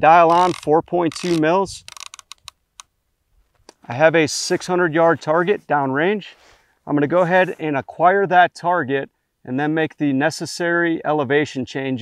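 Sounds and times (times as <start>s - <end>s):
riflescope turret clicking: 0.3s - 2.9s.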